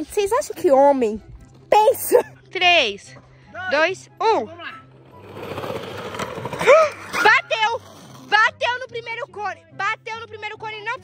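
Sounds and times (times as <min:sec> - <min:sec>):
toy wheels rolling on concrete: 0:05.2 - 0:08.3.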